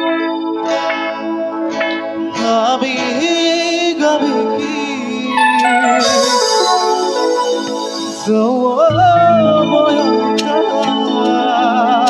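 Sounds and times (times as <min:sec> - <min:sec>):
live band music: 0:05.3 - 0:08.5.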